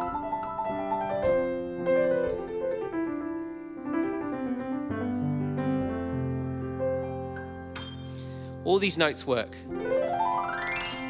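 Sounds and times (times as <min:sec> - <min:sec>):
piano improvisation: 0:00.0 - 0:11.0.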